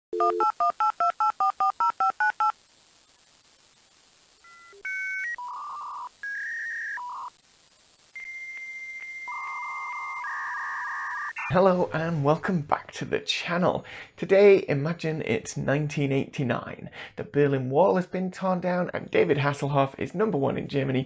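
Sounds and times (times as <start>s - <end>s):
touch-tone dialing beeps: 0.2s - 2.5s.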